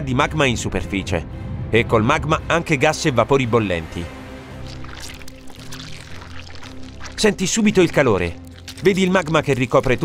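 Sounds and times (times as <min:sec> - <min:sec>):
music of sustained low tones: 0:00.0 - 0:10.0
hissing crackling sound effect: 0:04.6 - 0:10.0.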